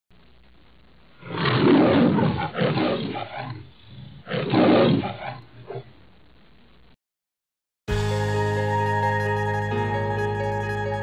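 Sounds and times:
lion roaring: 0:01.2 - 0:05.9.

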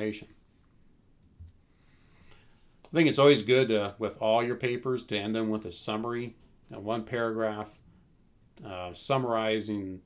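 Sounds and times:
man speaking: 0:00.0 - 0:00.4, 0:02.9 - 0:07.8, 0:08.6 - 0:10.0.

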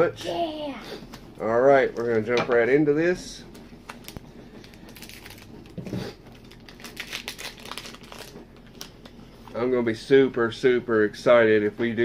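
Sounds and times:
plastic wrapper crinkling and tearing: 0:03.9 - 0:09.2.

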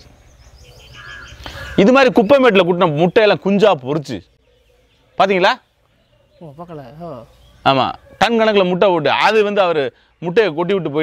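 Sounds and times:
small bird high chirps: 0:00.0 - 0:03.4
crow cawing faintly: 0:00.9 - 0:02.0.

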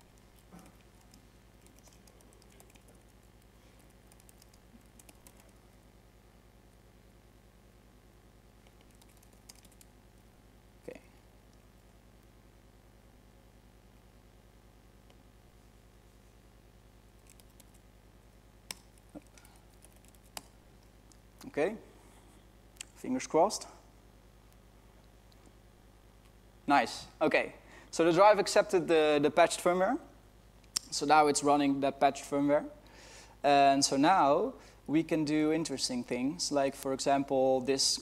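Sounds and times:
laptop keyboard typing: 0:00.0 - 0:05.7, 0:08.6 - 0:09.9, 0:17.2 - 0:17.8, 0:18.6 - 0:20.5
steady low hum: 0:00.0 - 0:38.0.

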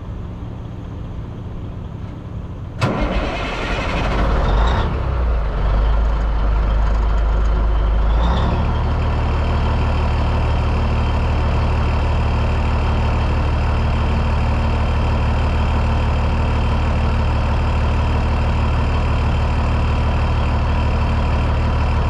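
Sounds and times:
diesel engine starting and idling: 0:00.0 - 0:22.0.

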